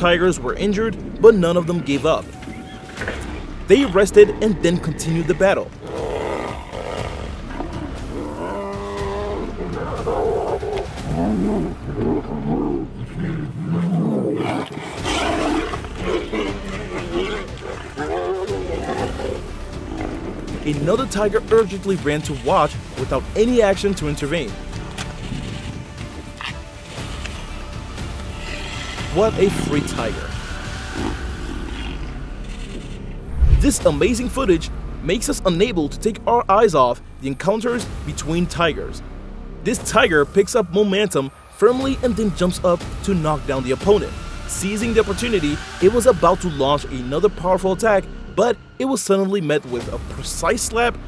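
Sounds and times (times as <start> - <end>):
tigers growling and roaring: 1.5 - 21.9, 28.4 - 34.0
low growling rumble: 31.7 - 34.7.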